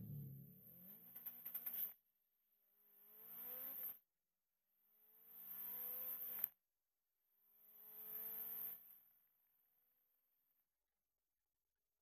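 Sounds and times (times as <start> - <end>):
racing car engine revving: 0.0 - 1.1.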